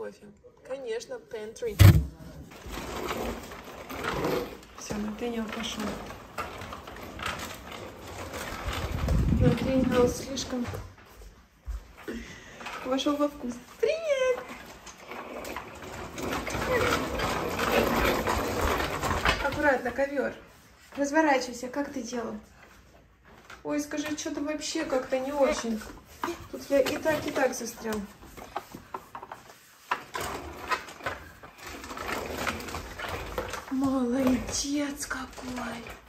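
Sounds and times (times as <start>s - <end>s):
plastic wheels rolling on hard floor: 1.5s - 36.0s.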